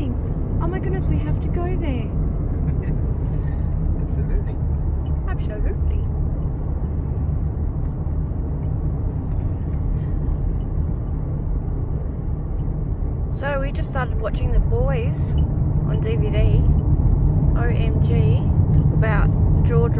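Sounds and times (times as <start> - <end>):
car interior road noise: 0.0 - 19.9.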